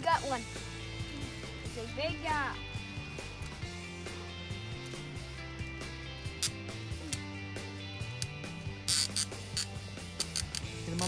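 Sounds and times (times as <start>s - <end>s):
fishing reel clicking: 8.9s - 10.7s.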